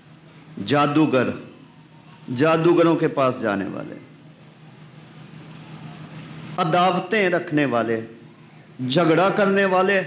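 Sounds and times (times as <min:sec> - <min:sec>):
room noise: 0:00.0 - 0:10.0.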